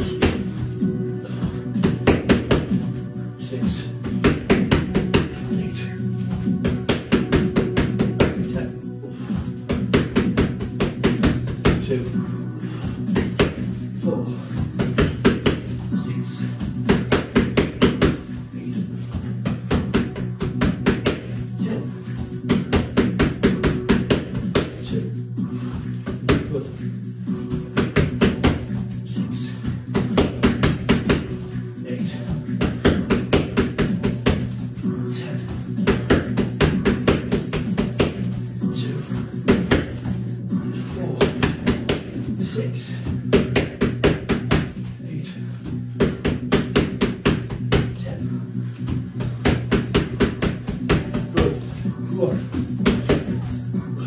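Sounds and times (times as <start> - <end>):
boxing gloves hitting focus mitts: 0.0 - 0.5, 1.8 - 2.8, 4.0 - 5.6, 6.6 - 8.6, 13.1 - 13.6, 16.8 - 18.3, 27.8 - 28.8, 39.4 - 40.0, 43.1 - 44.8, 46.0 - 48.0, 49.2 - 51.6
background music: 0.0 - 54.0.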